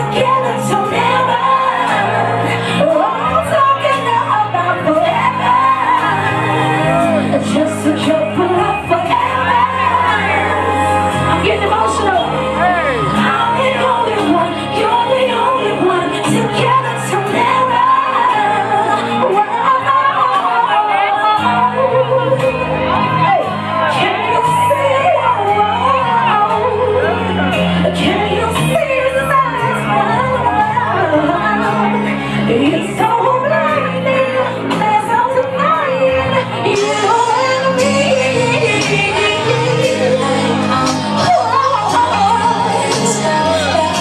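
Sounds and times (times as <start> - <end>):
live rnb band: 0.0 - 44.0
low bass notes: 0.0 - 44.0
woman singing into a microphone: 0.0 - 44.0.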